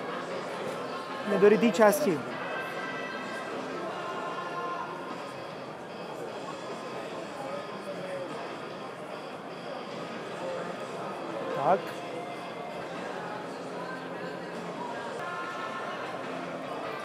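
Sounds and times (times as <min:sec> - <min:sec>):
indistinct background talk: 0:00.0 - 0:17.0.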